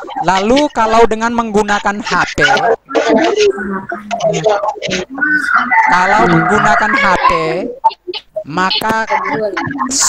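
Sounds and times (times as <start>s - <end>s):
man speaking: 0.0s - 7.8s, 8.4s - 10.0s
rooster crowing: 5.2s - 7.4s.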